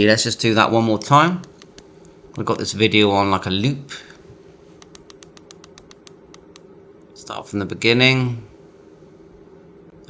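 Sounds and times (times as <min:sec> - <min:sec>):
faint steady hum: 0:00.0 - 0:10.0
radio keypad clicks: 0:04.8 - 0:06.6.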